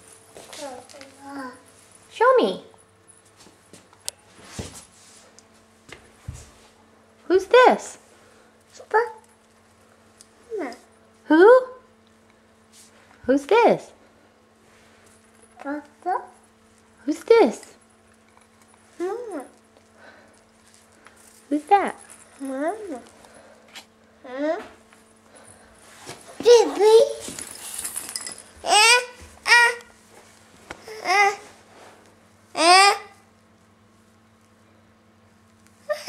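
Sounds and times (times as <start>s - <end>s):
faint steady hum: 0.0s - 36.0s
toddler vocalising: 28.6s - 29.9s.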